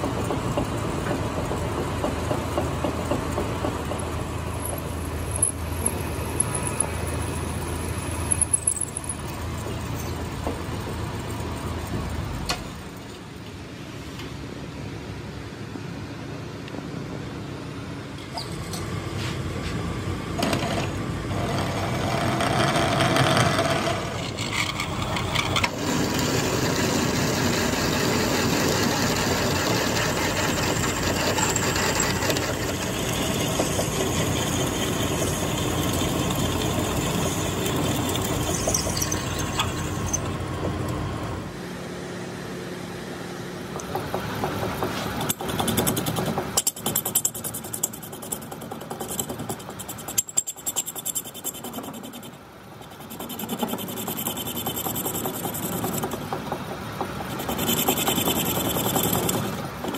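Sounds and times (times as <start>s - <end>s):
lathe tool scraping metal: 21.4s - 40.4s, 45.2s - 56.2s, 57.2s - 59.9s
lathe drilling steel: 23.6s - 40.5s.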